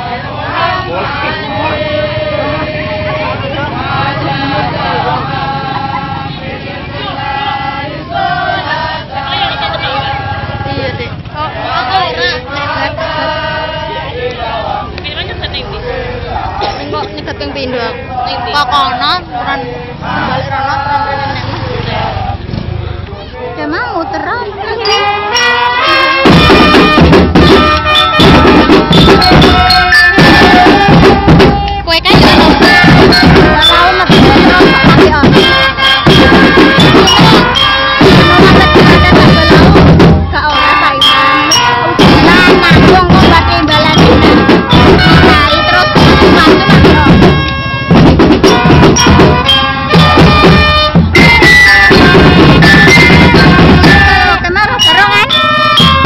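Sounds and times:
trumpets: 0.0 - 22.6, 23.2 - 56.0
bass drums and snare drums: 0.0 - 22.9, 23.6 - 56.0
marching band playing: 0.0 - 56.0
glockenspiel melody: 24.8 - 26.3, 40.5 - 42.7, 54.8 - 56.0.

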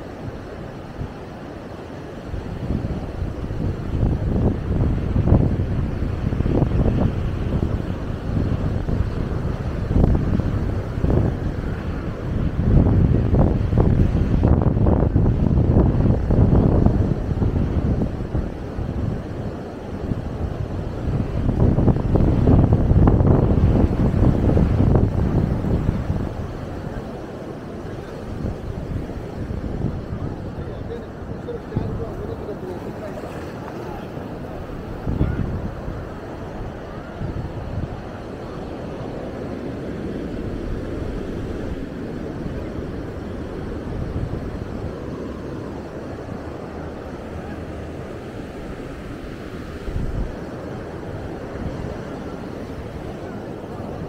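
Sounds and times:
surf breaking on beach: 0.0 - 54.0
wind buffeting microphone: 0.0 - 54.0.

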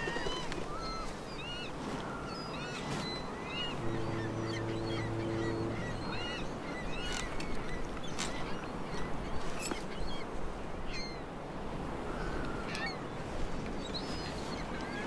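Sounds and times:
birds chirping: 2.4 - 10.3
low horn-like tone: 3.7 - 7.7.

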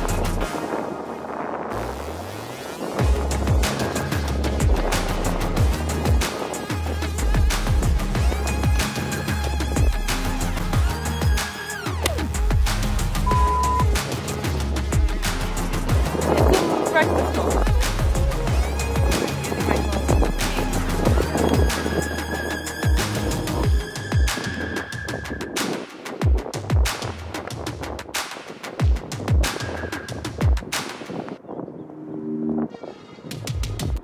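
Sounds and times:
music with beat and deep bass: 2.8 - 31.4.

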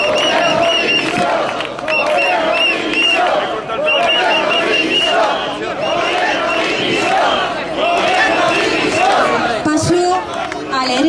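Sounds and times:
crowd chanting a slogan: 0.0 - 11.0.

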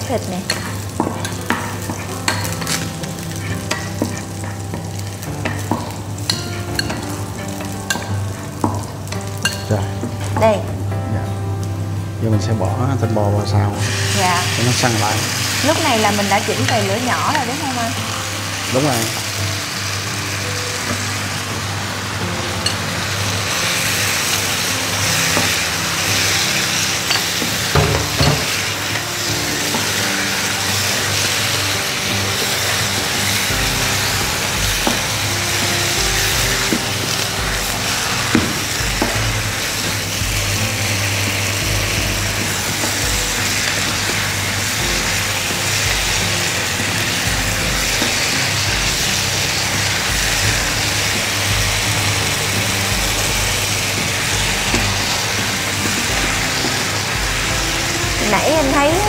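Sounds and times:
meat sizzling in oil: 0.0 - 59.0
wooden spatula knocking pan: 27.1 - 28.8.

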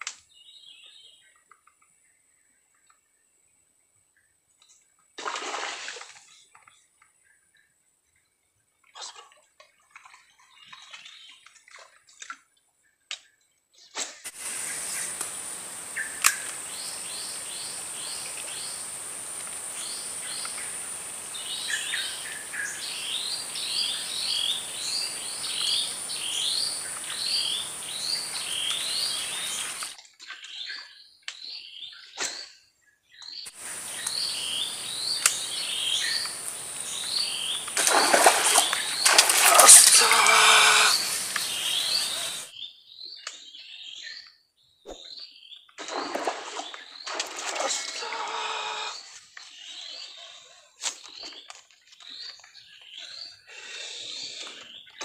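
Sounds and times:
steady high-pitched hiss: 14.3 - 30.0, 33.5 - 42.5
bird chirping: 14.4 - 45.7.

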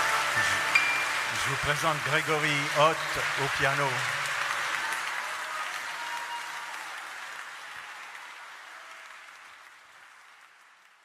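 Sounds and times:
audience applause: 0.0 - 11.0.

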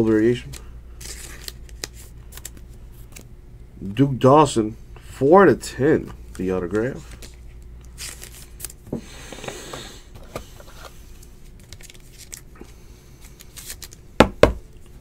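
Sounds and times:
plastic sleeve rustling and crinkling: 10.7 - 12.4.

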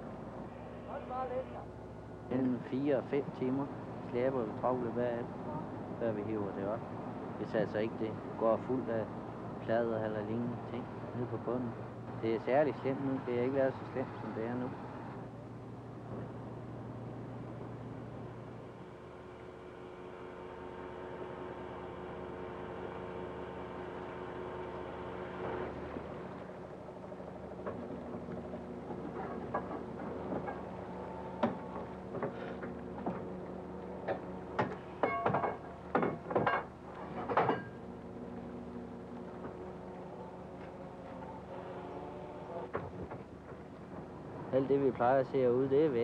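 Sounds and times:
boat engine running: 8.2 - 35.0, 35.6 - 45.0
knocks and clanks from fishing gear: 28.9 - 30.7, 34.0 - 37.8.

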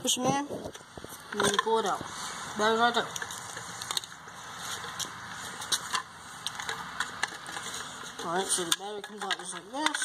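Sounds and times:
background noise: 0.0 - 10.0
rifle handling clicks and rattles: 3.1 - 4.1, 4.8 - 10.0.

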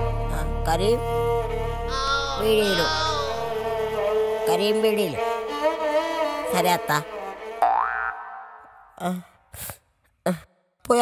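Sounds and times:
film score music: 0.0 - 7.7
short vocal sounds: 1.9 - 3.6
upward-sliding comic tone: 1.9 - 3.7.

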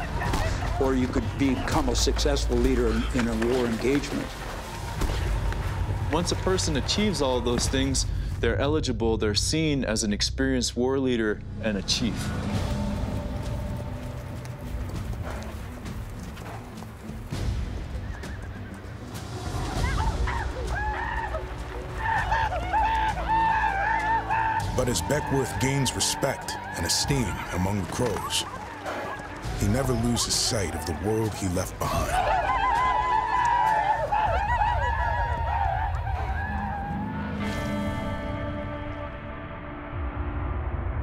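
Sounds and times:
film score with low drone: 0.0 - 41.0
horses whinnying: 12.8 - 37.7.

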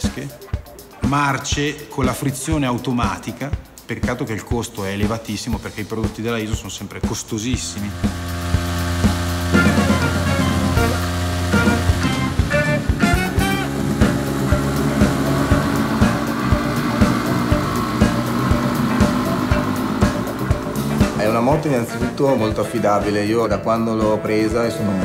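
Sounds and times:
background music with steady beat: 0.0 - 25.0.

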